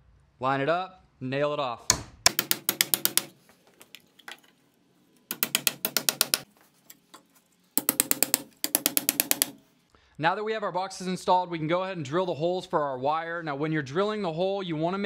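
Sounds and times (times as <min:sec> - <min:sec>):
hammer striking nails: 0:01.9 - 0:03.4, 0:05.3 - 0:06.5, 0:07.8 - 0:09.6.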